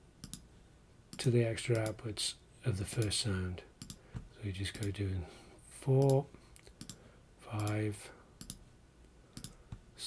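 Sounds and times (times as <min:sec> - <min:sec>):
faint mouse clicks: 0:00.2 - 0:00.5, 0:01.1 - 0:02.0, 0:07.6 - 0:07.8, 0:08.4 - 0:09.8.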